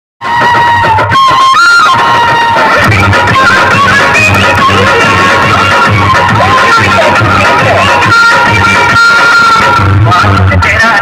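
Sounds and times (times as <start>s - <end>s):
song through horn loudspeakers: 0.2s - 11.0s.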